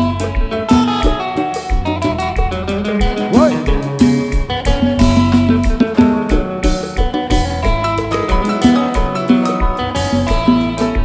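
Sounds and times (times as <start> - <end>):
dance music with guitar and bass: 0.0 - 11.0.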